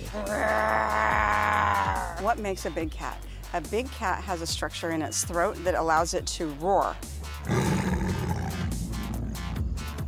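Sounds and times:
background music: 0.0s - 10.0s
tiger roaring: 7.4s - 9.5s.

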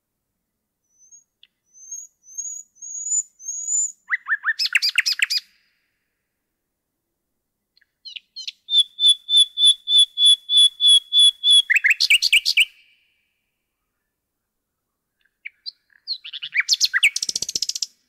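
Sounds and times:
nightingale singing: 0.8s - 5.8s, 7.8s - 13.1s, 15.1s - 18.0s.

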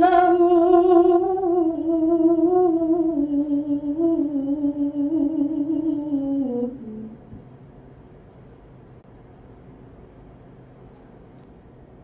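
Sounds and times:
girl reciting melodically: 0.0s - 7.2s.

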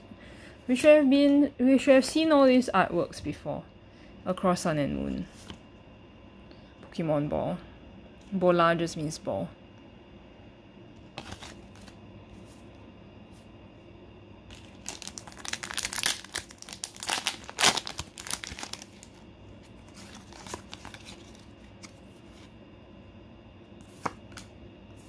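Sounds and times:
foil wrapper crinkling and tearing: 14.5s - 21.9s.

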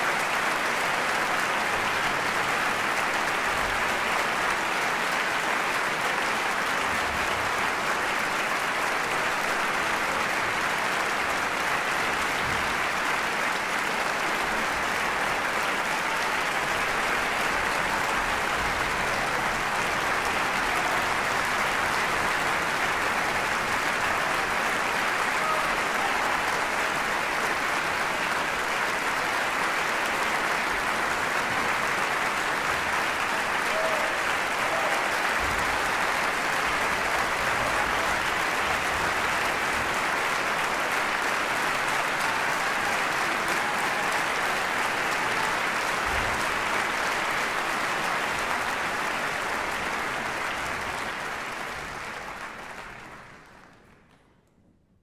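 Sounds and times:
audience applauding: 0.0s - 54.4s.

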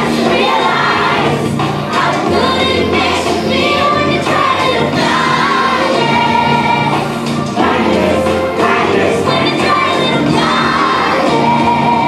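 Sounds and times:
children singing: 0.0s - 12.0s.

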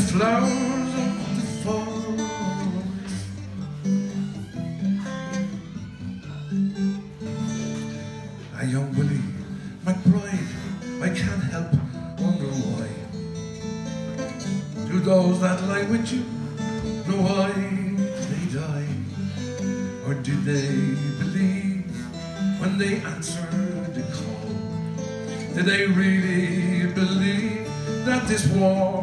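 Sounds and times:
acoustic guitar strummed: 0.0s - 29.0s.

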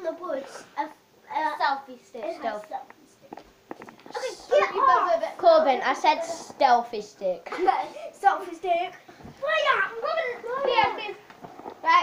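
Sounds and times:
children talking and calling out: 0.0s - 12.0s.

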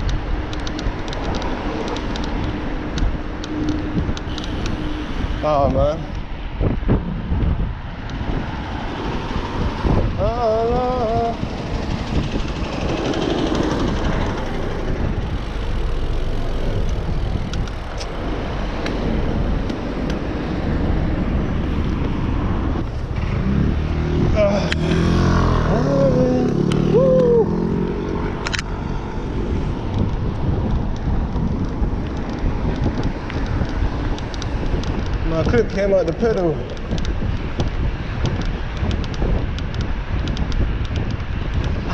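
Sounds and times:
road traffic: 0.0s - 41.9s
wind rumble on microphone: 0.0s - 41.9s.

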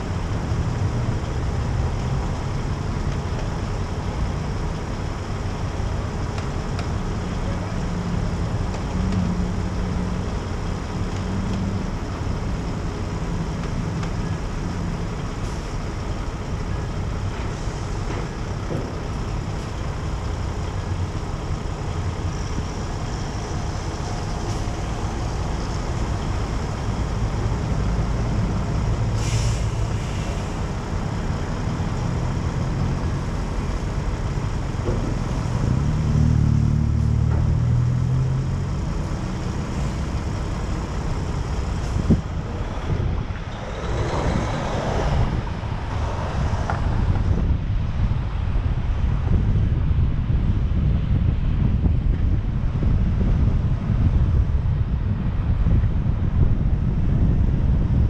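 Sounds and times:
city street traffic: 0.0s - 58.0s
air hiss: 29.1s - 30.6s
wind on microphone: 37.6s - 58.0s.

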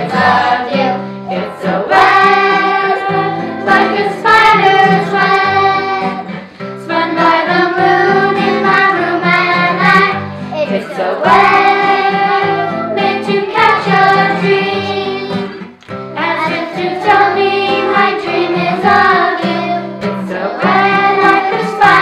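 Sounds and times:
children and woman singing: 0.0s - 22.0s
strummed acoustic guitar: 0.0s - 22.0s.

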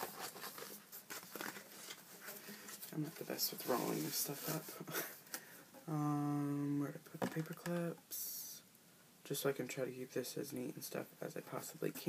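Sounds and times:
paper poster rustling: 0.0s - 4.8s.

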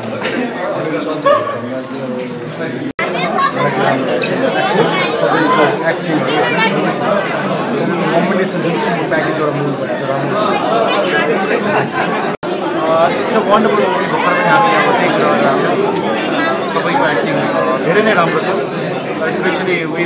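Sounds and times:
crowd chatter in large hall: 0.0s - 20.0s.

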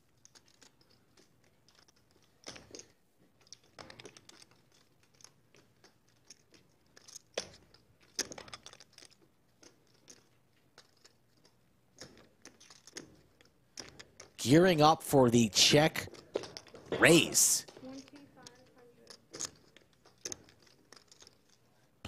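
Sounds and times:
poker chips clicking: 0.0s - 14.4s, 16.1s - 21.7s.

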